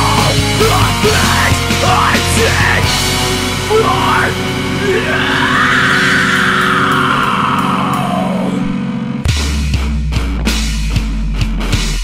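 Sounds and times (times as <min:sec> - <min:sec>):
heavy distorted guitars and bass: 0:00.0 - 0:12.0.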